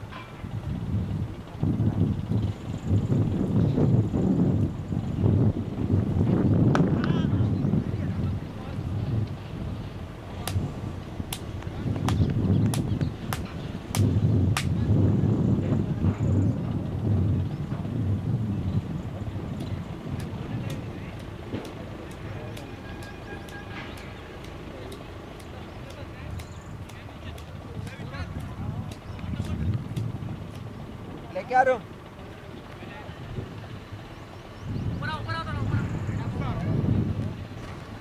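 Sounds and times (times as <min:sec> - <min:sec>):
wind buffeting microphone: 0:00.0 - 0:38.0
faint voices: 0:14.6 - 0:38.0.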